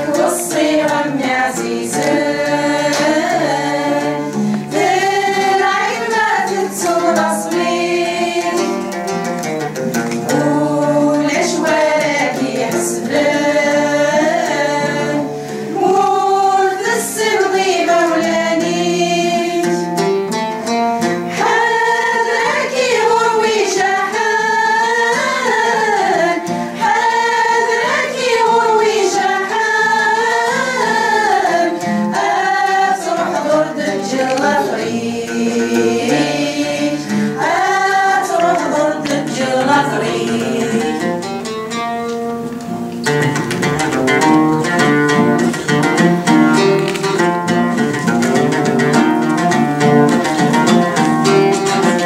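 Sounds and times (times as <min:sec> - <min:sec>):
women singing in unison: 0:00.0 - 0:09.2, 0:10.1 - 0:20.2, 0:21.2 - 0:41.6, 0:48.9 - 0:52.0
plucked lute: 0:00.0 - 0:52.0
strummed acoustic guitar: 0:00.0 - 0:52.0.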